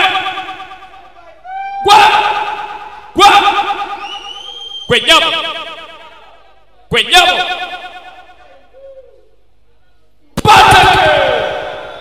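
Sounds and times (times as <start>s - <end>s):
fighting shout: 10.4s - 12.0s.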